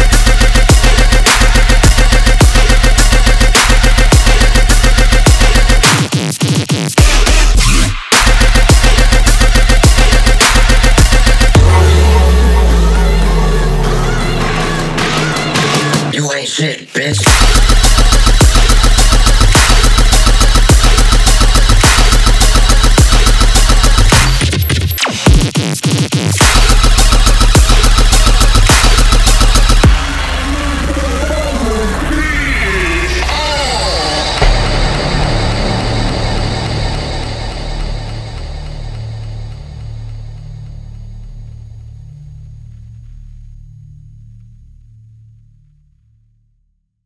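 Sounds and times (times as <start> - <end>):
distorted synth bass: 0.0 - 16.3, 17.2 - 46.0
dubstep track: 0.0 - 42.2
deep falling sweep: 29.9 - 41.8.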